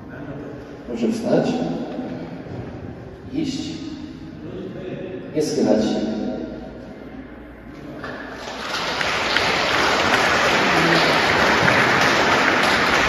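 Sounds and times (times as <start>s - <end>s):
crowd applauding: 8.0s - 13.0s.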